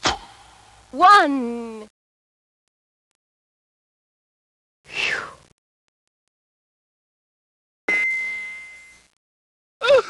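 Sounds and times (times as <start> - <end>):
bell ding: 7.9 - 9.0.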